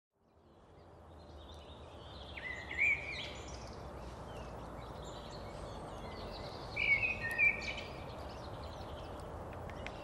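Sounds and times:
birds chirping and calling: 0:00.4 - 0:10.0.

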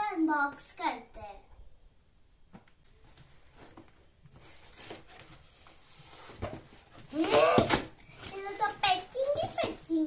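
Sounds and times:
plastic-wrapped parcel rustling: 0:03.0 - 0:10.0.

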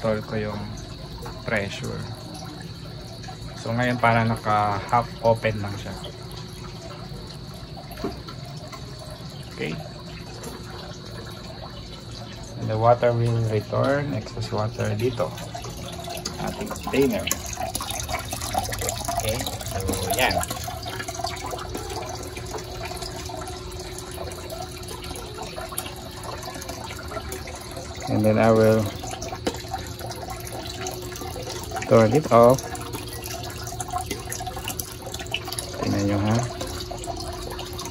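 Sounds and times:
water pump hum: 0:00.0 - 0:37.9
water running into plastic bucket: 0:00.0 - 0:37.9.

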